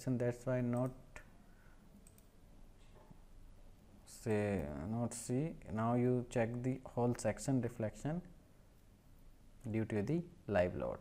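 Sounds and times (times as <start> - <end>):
computer mouse clicks: 2.0 - 2.4.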